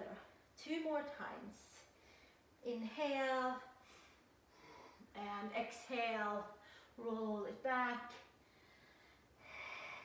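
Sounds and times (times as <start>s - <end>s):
person breathing: 3.8s - 5.1s, 8.4s - 10.0s.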